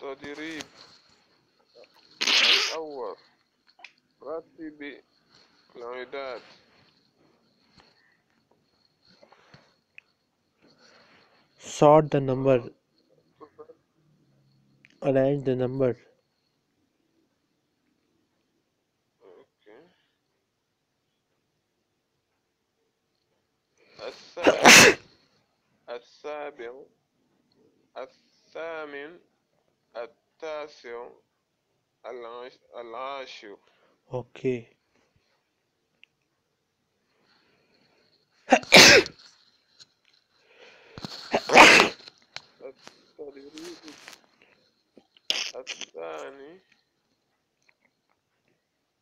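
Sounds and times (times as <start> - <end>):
man sneezing: 2.2 - 2.9, 24.4 - 25.0, 38.5 - 39.2, 41.3 - 42.0.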